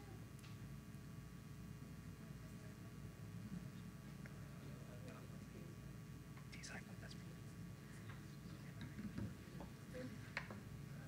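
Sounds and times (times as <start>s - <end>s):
steady low hum: 0.0s - 11.0s
people whispering: 6.5s - 11.0s.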